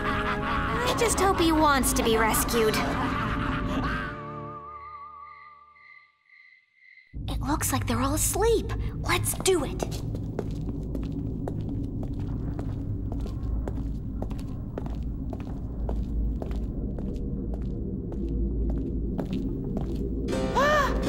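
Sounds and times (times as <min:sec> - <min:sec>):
low droning music: 0:00.0 - 0:05.3, 0:07.2 - 0:21.0
soft sneaking footsteps: 0:09.3 - 0:20.3.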